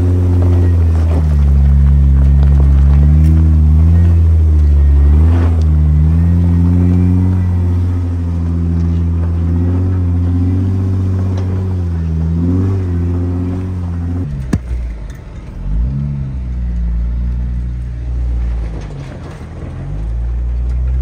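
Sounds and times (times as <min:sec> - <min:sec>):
car engine running: 0:00.0 - 0:21.0
engine revving: 0:00.0 - 0:21.0.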